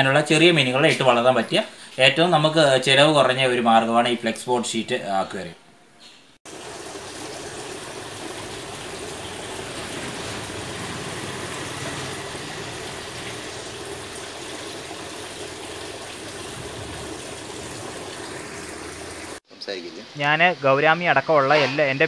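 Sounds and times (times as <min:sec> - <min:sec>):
water pouring and splashing into a tub: 0:06.5 - 0:19.5.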